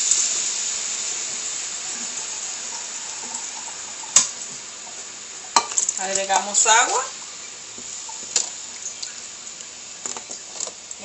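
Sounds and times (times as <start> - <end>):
broth hissing in a pot: 0.0 - 11.0.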